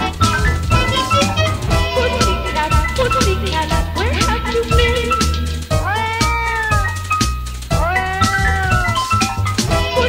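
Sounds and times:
song with bass beat: 0.0 - 10.0
cat meowing: 5.8 - 7.1, 7.7 - 10.0.

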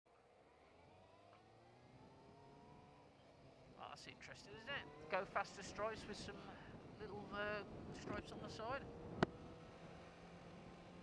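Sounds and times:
motorcycle engine accelerating: 0.2 - 11.0.

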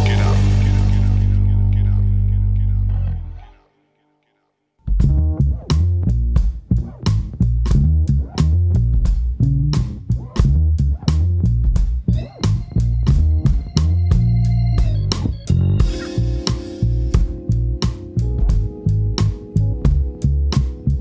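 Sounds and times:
steady drum beat: 0.0 - 1.4, 4.9 - 21.0
electric bass with tube overdrive: 0.0 - 3.6, 4.9 - 21.0.

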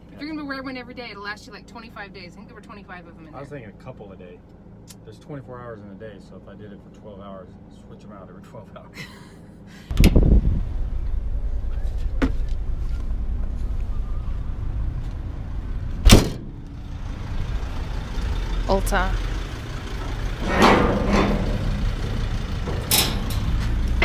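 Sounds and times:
low rumble: 9.9 - 24.0
vehicle door slamming: 16.0 - 16.6.

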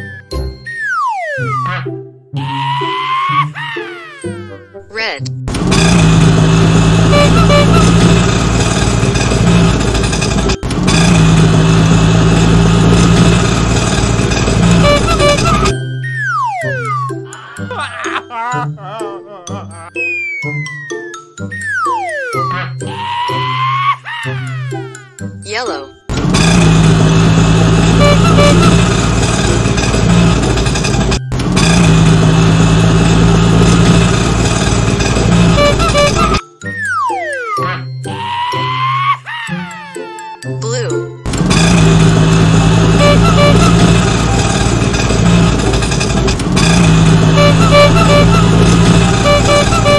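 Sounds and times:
auto-rickshaw engine running: 5.4 - 17.3, 26.1 - 36.4, 41.2 - 49.9.

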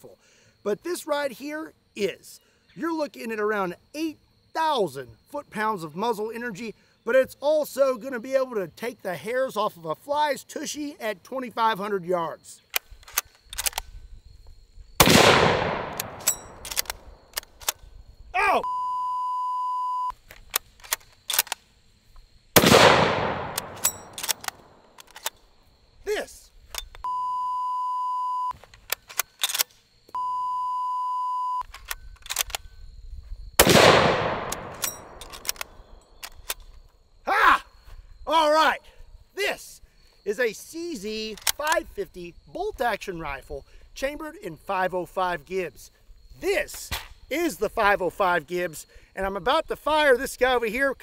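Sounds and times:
rifle bolt clicks: 12.7 - 13.9, 15.0 - 17.8, 20.3 - 21.6, 22.6 - 25.4, 28.8 - 29.8, 31.6 - 32.7, 33.6 - 36.8, 41.3 - 41.8
rifle shots echoing: 15.0 - 17.1, 22.6 - 24.8, 33.6 - 35.8
high censor beep: 18.6 - 20.1, 27.0 - 28.5, 30.2 - 31.7.

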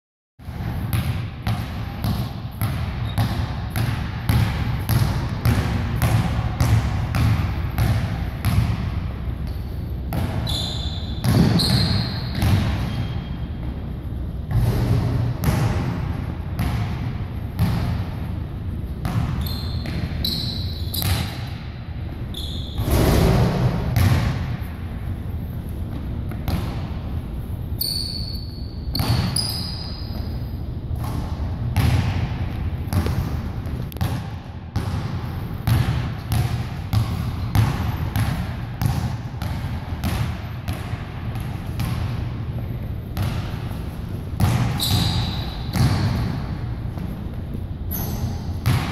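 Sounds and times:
sneaker squeaks: 2.5 - 3.6, 9.5 - 13.8, 19.1 - 21.6, 22.2 - 23.3, 27.7 - 30.7, 43.2 - 46.3, 47.0 - 48.9
basketball dribbling on hardwood: 35.7 - 42.1.

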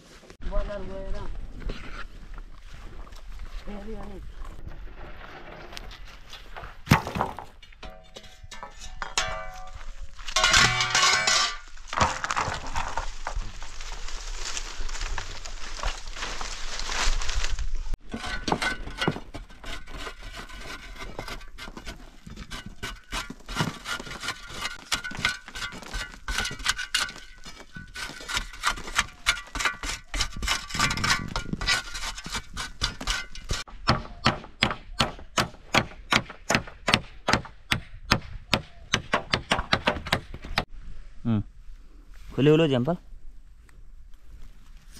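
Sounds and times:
shovel digging into earth: 18.0 - 33.7.

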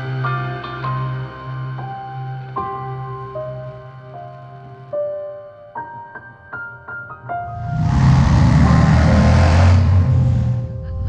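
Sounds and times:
soft piano music: 0.0 - 7.7
wind rush: 7.4 - 10.8.

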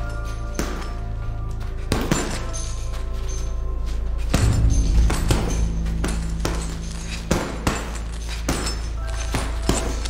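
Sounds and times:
gloves punching heavy bag: 0.0 - 3.4, 4.2 - 10.0
low steady drone: 0.0 - 10.0.

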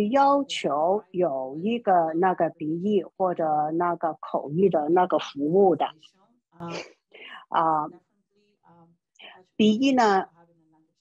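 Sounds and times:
person talking: 6.6 - 7.9, 9.6 - 10.2.

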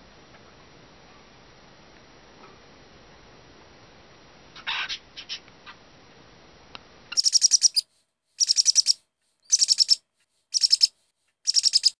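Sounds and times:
high-pitched bird chirping: 7.1 - 7.8, 8.4 - 11.9.

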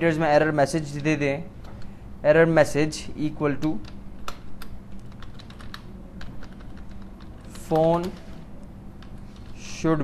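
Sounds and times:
keyboard typing: 3.6 - 9.6.

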